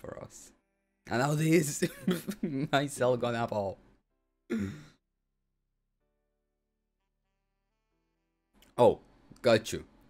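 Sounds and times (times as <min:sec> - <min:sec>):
man sighing: 0:04.5 - 0:05.0.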